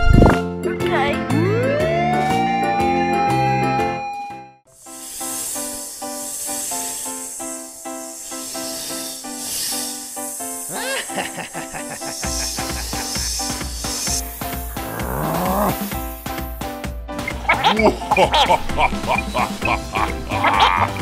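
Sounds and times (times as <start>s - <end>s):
background music repeated notes: 0.1s - 21.0s
high snake-like hissing: 4.7s - 21.0s.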